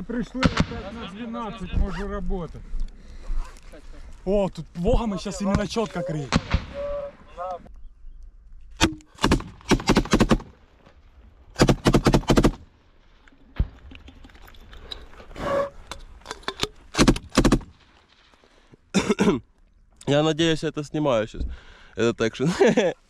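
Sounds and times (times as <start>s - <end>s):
rifle fire in bursts: 9.2s - 10.6s, 11.6s - 12.7s, 16.9s - 17.8s.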